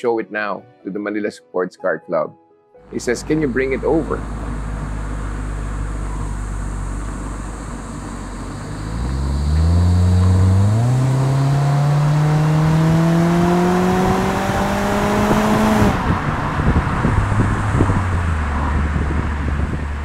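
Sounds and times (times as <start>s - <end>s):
car engine accelerating: 2.9s - 20.0s.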